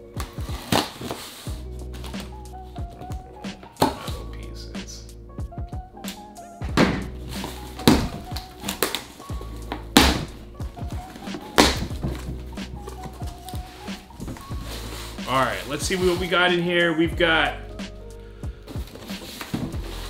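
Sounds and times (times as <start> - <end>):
background music with beat: 0.0 - 20.0
packing tape pulled: 0.2 - 2.3, 7.2 - 10.1
knocks on box: 6.7 - 7.1.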